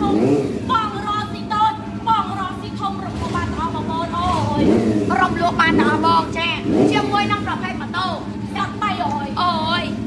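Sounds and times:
motorcycle engine idling: 0:00.0 - 0:10.0
woman speaking loudly: 0:00.0 - 0:10.0.

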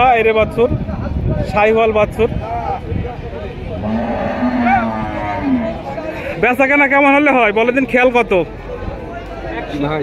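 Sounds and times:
cow mooing: 0:03.8 - 0:05.8.

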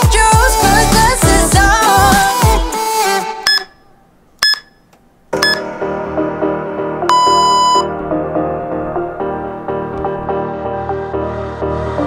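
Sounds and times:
electronic music track: 0:00.0 - 0:03.5, 0:05.4 - 0:12.0
pop song: 0:00.0 - 0:04.0, 0:05.4 - 0:12.0
timer beeps: 0:03.5 - 0:03.8, 0:04.4 - 0:04.8, 0:05.4 - 0:05.7, 0:07.1 - 0:07.9.

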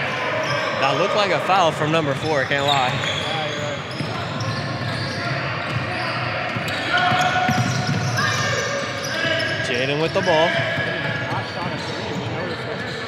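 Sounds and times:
players and spectators chattering: 0:00.0 - 0:13.0.

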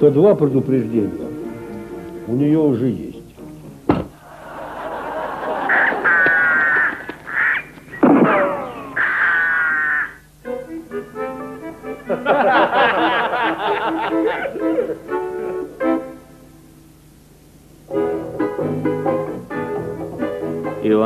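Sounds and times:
keyboard notes: 0:00.0 - 0:04.2, 0:05.5 - 0:17.2, 0:17.8 - 0:21.0
sharp thump: 0:03.9 - 0:04.2.

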